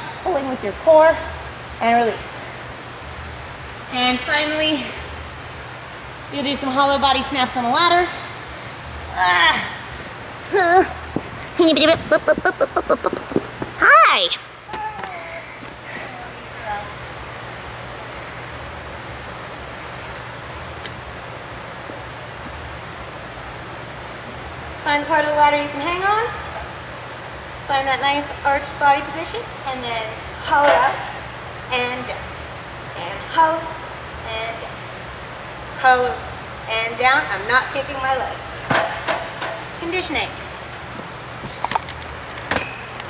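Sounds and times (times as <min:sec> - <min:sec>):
low air handling hum: 0:00.0 - 0:43.0
ventilation hiss: 0:00.0 - 0:43.0.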